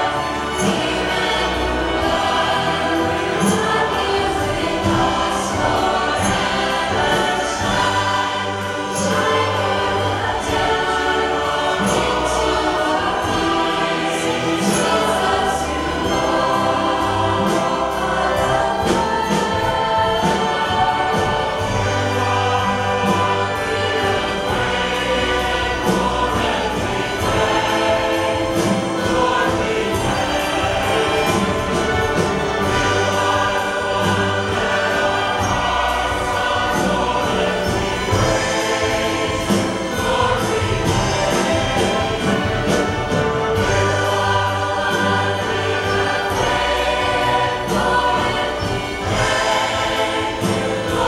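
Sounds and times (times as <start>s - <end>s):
large choir singing: 0.0s - 51.0s
orchestral accompaniment: 0.0s - 51.0s.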